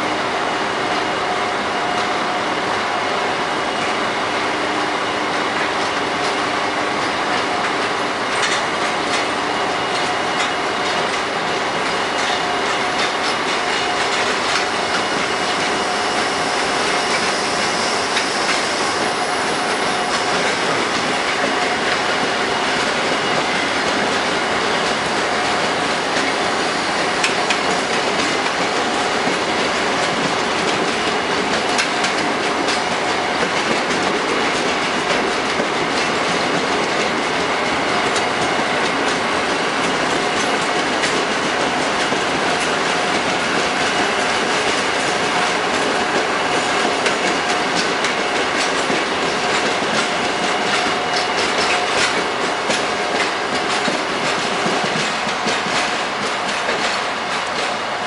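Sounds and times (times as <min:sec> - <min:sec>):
train wheels rumbling: 0:00.0 - 0:58.0
clickety-clack over rail joints: 0:00.8 - 0:58.0.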